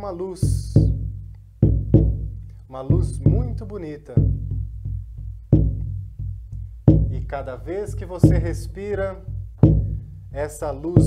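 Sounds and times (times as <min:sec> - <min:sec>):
deep drum strikes: 0:00.0 - 0:11.0.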